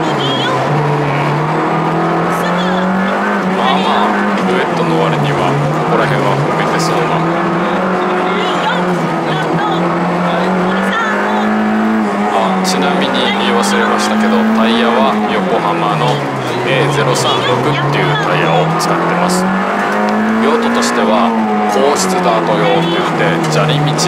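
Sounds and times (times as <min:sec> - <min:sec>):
car engine revving: 0:00.0 - 0:24.0.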